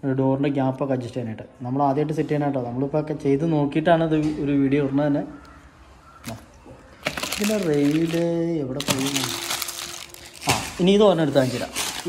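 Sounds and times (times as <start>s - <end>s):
crinkling handling noise: 6.2s - 12.0s
person talking: 7.2s - 10.1s.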